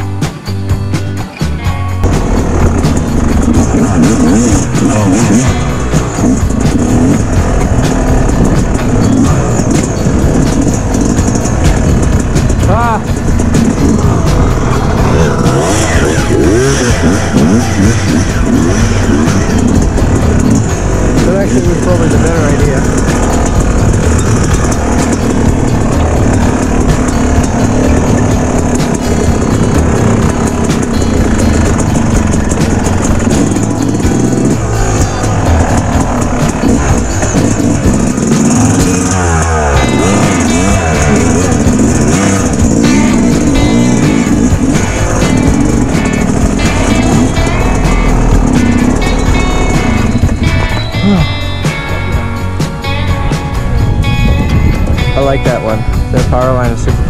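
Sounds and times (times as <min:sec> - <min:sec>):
dirt bike engine revving: 0:00.0 - 0:57.0
music track: 0:00.0 - 0:57.0.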